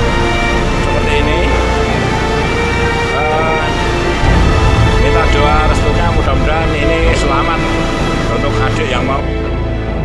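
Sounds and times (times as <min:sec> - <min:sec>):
music with held notes: 0:00.0 - 0:10.0
loud low rushing noise: 0:04.2 - 0:08.4.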